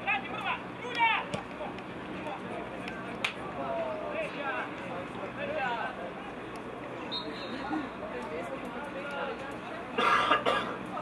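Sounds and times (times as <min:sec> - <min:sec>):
players shouting: 0:00.0 - 0:06.0.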